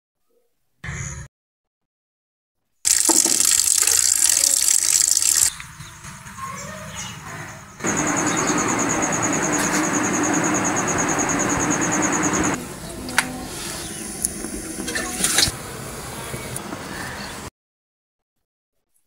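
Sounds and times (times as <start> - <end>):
loud steady hiss: 2.9 - 5.5, 7.8 - 17.5
fast high chirping: 2.9 - 5.6, 7.8 - 12.6.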